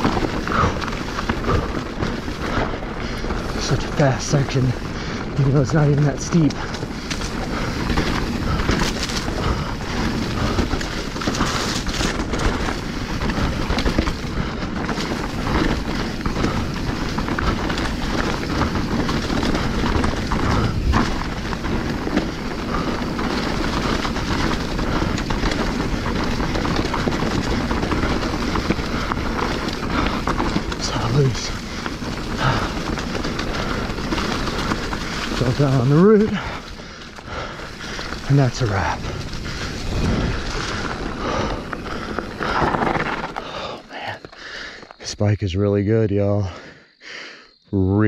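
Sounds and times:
bike clattering and rattling: 0.0 - 44.9
tyres rushing on dirt trail: 0.0 - 48.0.

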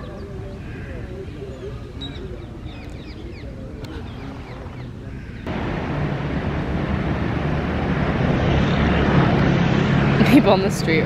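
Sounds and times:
passing traffic: 3.4 - 11.0
low rumble: 5.4 - 11.0.

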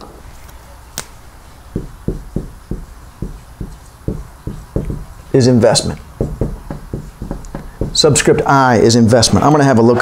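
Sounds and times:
marker knocking on whiteboard: 1.7 - 8.6.

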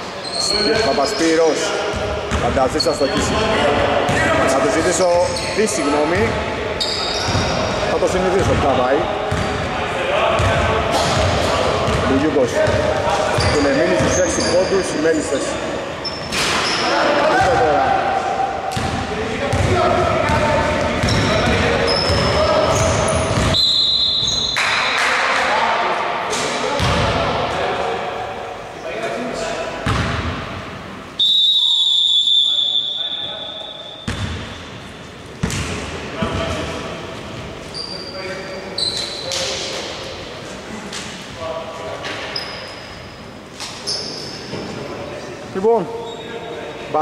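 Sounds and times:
players' voices echoing: 0.0 - 47.0
referee whistle blasts: 23.5 - 24.6, 31.2 - 34.1
basketball bouncing on hardwood floor: 34.1 - 34.4, 35.4 - 36.4.

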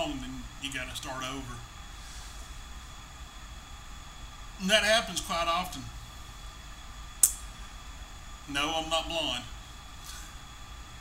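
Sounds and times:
low room hum: 0.0 - 11.0
short sharp click: 7.2 - 7.4.

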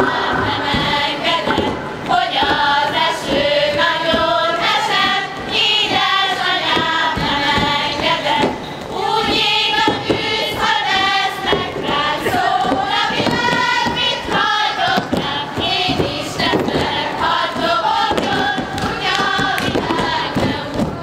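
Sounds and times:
footsteps on a stage: 0.0 - 21.0
women singing together: 0.0 - 21.0.

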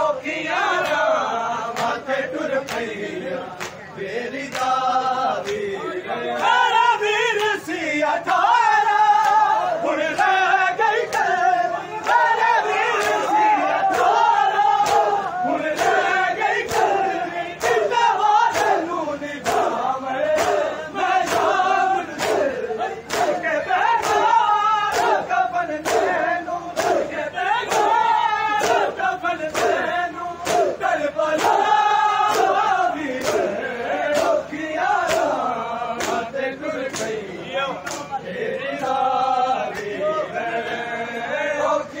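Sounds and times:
crowd of men chanting: 0.0 - 42.0.

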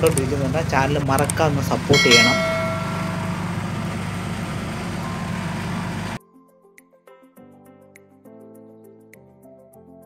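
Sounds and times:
road noise: 0.0 - 6.2
vehicle engine drone: 0.0 - 6.2.

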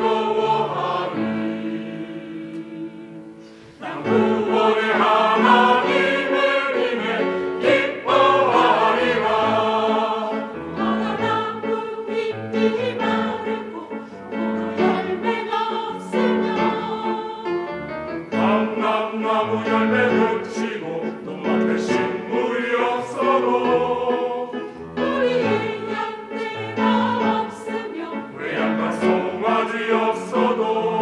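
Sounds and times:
choir singing an anthem: 0.0 - 31.0
piano accompaniment: 0.0 - 31.0.

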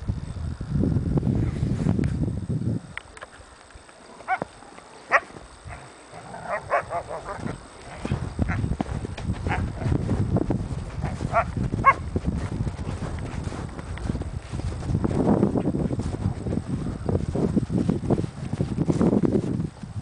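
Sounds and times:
wind rumble on microphone: 0.0 - 4.6, 5.4 - 20.0.

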